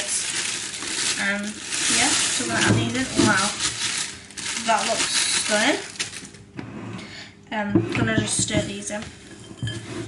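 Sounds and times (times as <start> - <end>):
rustling and clatter over bowl: 0.0 - 7.0, 7.7 - 10.0.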